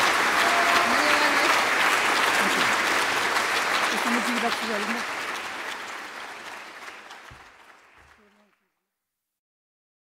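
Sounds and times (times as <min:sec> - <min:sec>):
audience applause: 0:00.0 - 0:08.6.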